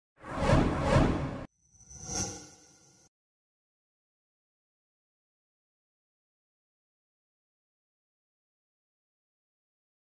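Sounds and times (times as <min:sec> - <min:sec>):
whoosh: 0:00.2 - 0:02.6.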